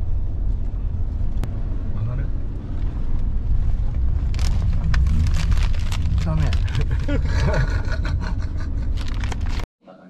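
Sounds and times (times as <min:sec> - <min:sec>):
car cabin rumble: 0:00.0 - 0:09.6.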